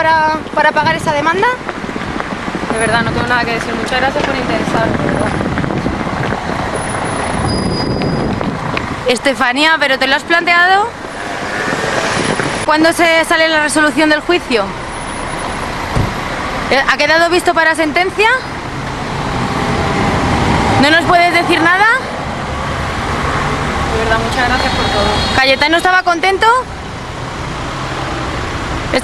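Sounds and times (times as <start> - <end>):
passing vehicles hum: 0.0 - 29.0
street traffic: 0.0 - 29.0
dull low thump: 15.9 - 16.3.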